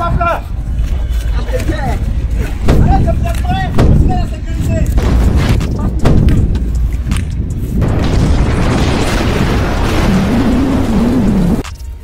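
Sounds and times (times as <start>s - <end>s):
rumbling explosion: 5.0s - 6.8s, 7.8s - 11.6s.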